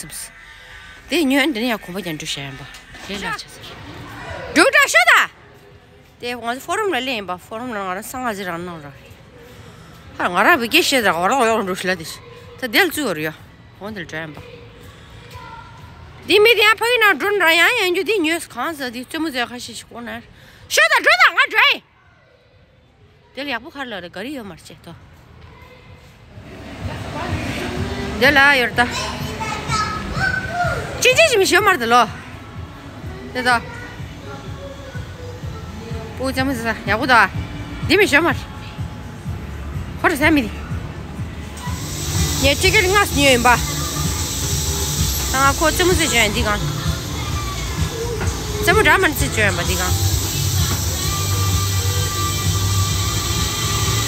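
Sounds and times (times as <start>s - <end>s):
low rumble of spinning ride: 26.3s - 29.5s
fairground ride music: 26.4s - 54.0s.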